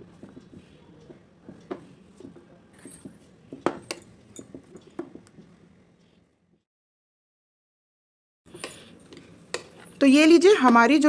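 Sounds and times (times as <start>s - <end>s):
dough kneaded by hand in bowl: 0.0s - 3.9s.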